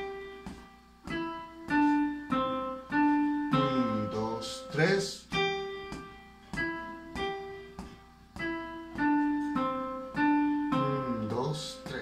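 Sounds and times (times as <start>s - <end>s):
electronic keyboard piano melody: 0.0s - 12.0s
person speaking: 3.2s - 5.4s, 10.7s - 12.0s.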